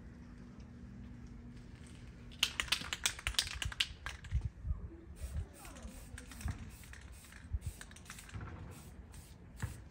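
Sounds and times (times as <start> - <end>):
spray can rattling while shaken: 2.3 - 4.4, 5.2 - 9.7.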